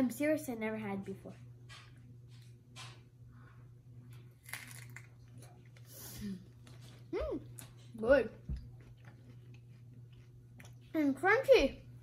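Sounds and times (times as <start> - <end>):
lettuce leaf crunching: 4.4 - 5.1.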